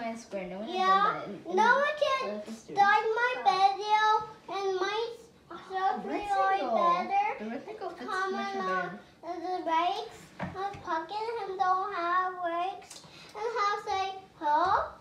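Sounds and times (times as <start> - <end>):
children talking: 0.6 - 15.0.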